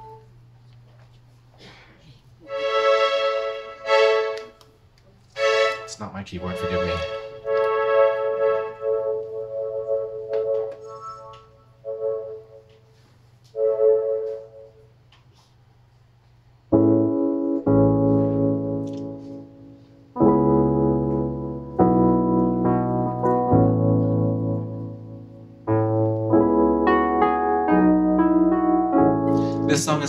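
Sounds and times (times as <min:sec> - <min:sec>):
digital piano chords and notes: 0:00.0 - 0:00.2, 0:05.4 - 0:12.8, 0:13.5 - 0:14.8, 0:16.7 - 0:30.0.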